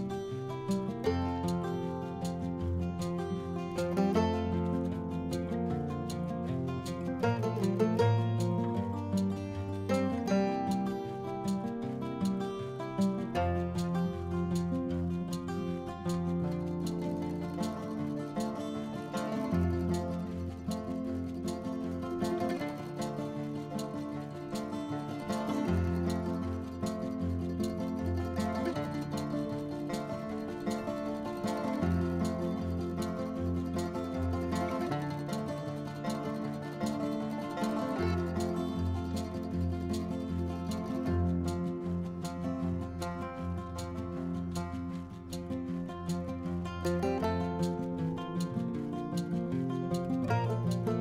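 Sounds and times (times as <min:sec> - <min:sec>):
plucked strings music: 0:00.0 - 0:51.0.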